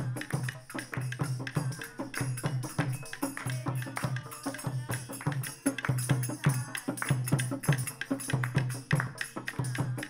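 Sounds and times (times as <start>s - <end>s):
hand drum folk rhythm: 0.0s - 10.0s
tambourine jingles: 0.0s - 10.0s.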